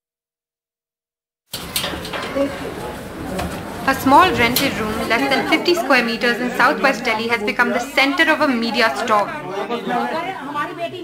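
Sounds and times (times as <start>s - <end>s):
noisy room background: 1.5s - 11.0s.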